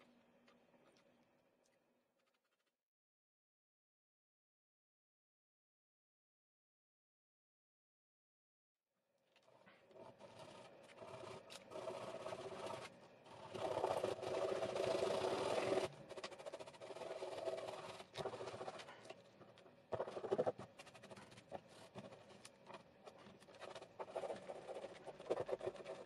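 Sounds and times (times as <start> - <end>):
brush handle scraping paint on plastic: 9.6 - 26.0.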